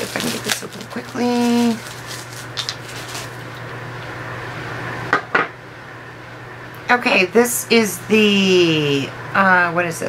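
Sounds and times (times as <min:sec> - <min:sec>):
package rustling: 0:00.0 - 0:03.8.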